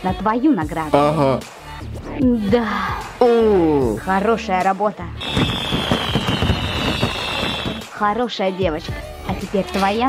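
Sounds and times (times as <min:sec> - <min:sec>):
crackle of pops: 0:05.2 - 0:07.8
falling firework whistle: 0:05.2 - 0:07.9.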